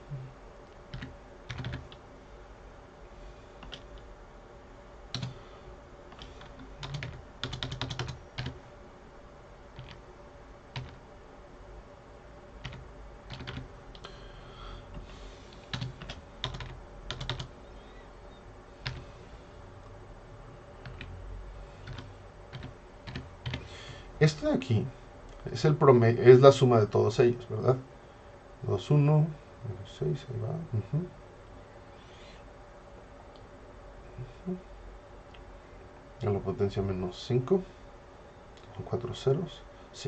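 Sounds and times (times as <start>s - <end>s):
computer keyboard keystrokes: 0.9s - 2.0s, 3.6s - 4.1s, 5.1s - 5.3s, 6.1s - 8.6s, 9.8s - 10.0s, 10.8s - 11.0s, 12.6s - 14.1s, 15.5s - 17.5s, 18.8s - 19.0s, 20.8s - 21.1s, 21.8s - 23.7s
man talking: 24.2s - 27.8s, 28.6s - 31.1s, 34.1s - 34.6s, 36.2s - 37.7s, 38.7s - 40.0s.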